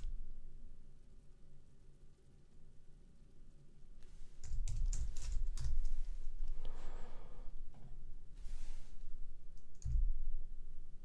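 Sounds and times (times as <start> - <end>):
keyboard typing: 4.4 - 6.0.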